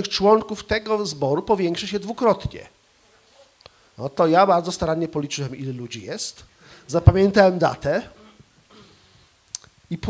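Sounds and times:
man talking into microphone: 0:00.0 - 0:02.8, 0:04.0 - 0:08.3.

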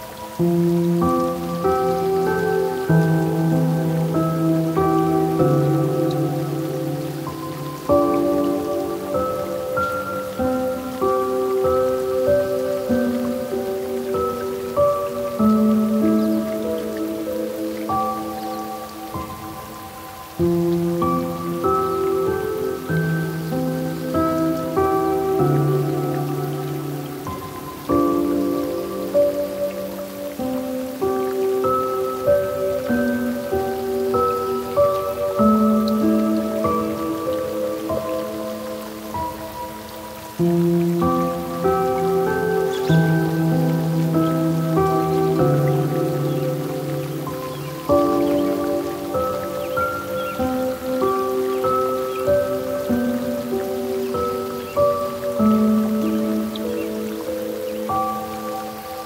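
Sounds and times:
faint hiss of water: 0:00.0 - 0:59.0
gentle solo piano music: 0:00.0 - 0:59.0.

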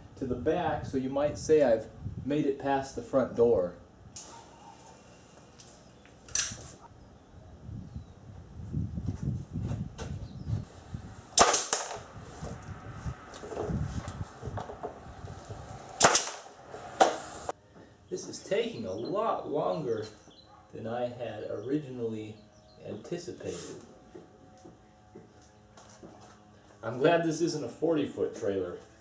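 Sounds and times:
pneumatic staple gun shots: 0:06.3 - 0:06.6, 0:11.4 - 0:12.1, 0:16.0 - 0:17.4
shuffling and handling noise: 0:23.4 - 0:24.0.

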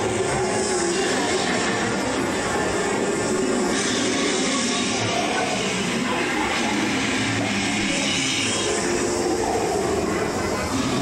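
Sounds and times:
train ride roaring: 0:00.0 - 0:11.0.

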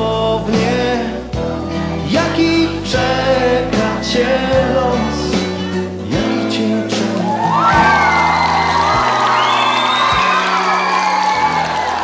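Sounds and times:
live rock band playing: 0:00.0 - 0:12.0
audience cheering and whooping: 0:07.2 - 0:12.0.

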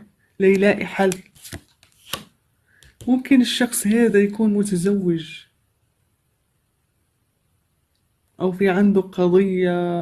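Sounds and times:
cards clicking: 0:00.5 - 0:03.1.

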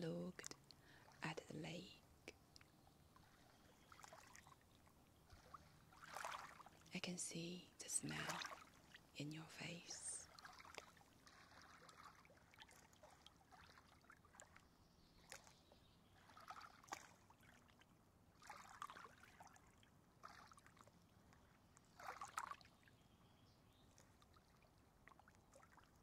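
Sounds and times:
lake waves lapping against rocks: 0:03.2 - 0:06.9, 0:08.1 - 0:09.1, 0:10.2 - 0:15.6, 0:16.2 - 0:22.7.

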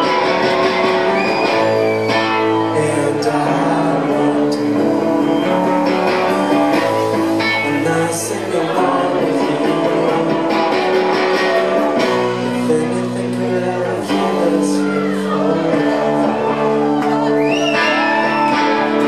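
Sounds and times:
bass: 0:00.0 - 0:19.0
drums: 0:00.0 - 0:19.0
electric guitars: 0:00.0 - 0:19.0
singing: 0:00.0 - 0:19.0.

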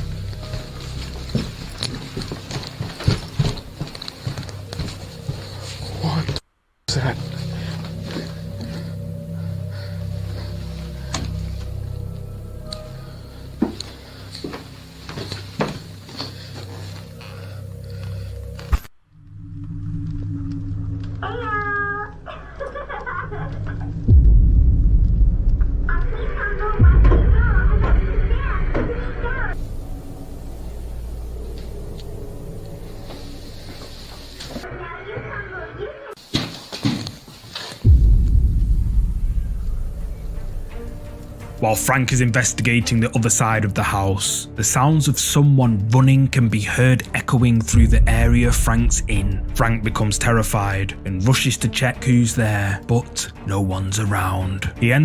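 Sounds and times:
hurried footsteps: 0:00.0 - 0:06.4, 0:07.1 - 0:18.9, 0:26.8 - 0:42.0
steady low hum: 0:00.0 - 0:28.6, 0:29.2 - 0:34.6, 0:37.8 - 0:41.6
scuffs and clicks: 0:00.3 - 0:06.4.

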